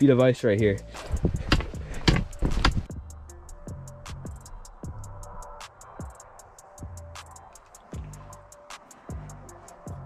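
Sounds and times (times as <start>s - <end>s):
music with ticking beat: 0.0s - 10.0s.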